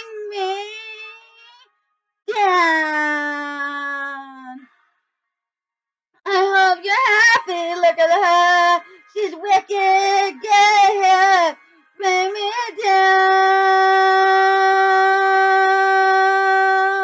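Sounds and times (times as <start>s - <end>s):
woman singing: 0.0s - 1.2s, 6.3s - 17.0s.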